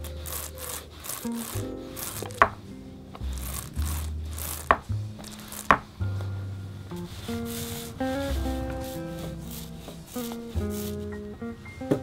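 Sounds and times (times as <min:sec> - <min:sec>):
background music with bass: 0:00.0 - 0:12.0
paint roller on plastic tray: 0:00.2 - 0:02.5, 0:03.2 - 0:05.9, 0:09.4 - 0:11.0.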